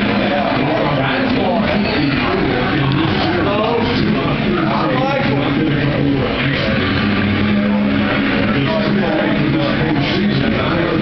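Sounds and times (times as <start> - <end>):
crowd chatter: 0.0 - 11.0
music playing: 0.0 - 11.0.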